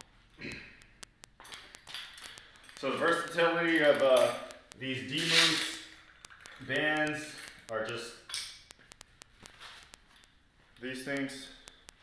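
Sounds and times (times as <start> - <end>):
hook-and-loop strap ripping: 5.1 - 5.8.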